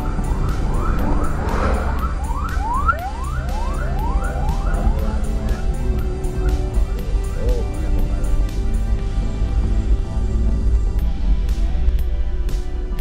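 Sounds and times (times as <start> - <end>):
siren yelping: 0.0 - 7.9
background music: 0.0 - 13.0
low vehicle drone: 0.0 - 13.0.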